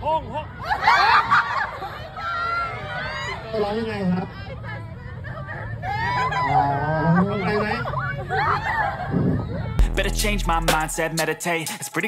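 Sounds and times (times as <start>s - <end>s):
crowd chatter: 0.4s - 11.2s
man singing into a microphone: 9.8s - 12.0s.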